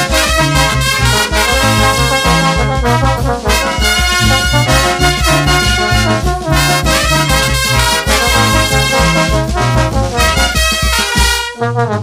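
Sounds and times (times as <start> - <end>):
brass band playing: 0.0 - 12.0
pulsing bass line: 0.0 - 12.0
trumpets playing melody: 0.0 - 12.0.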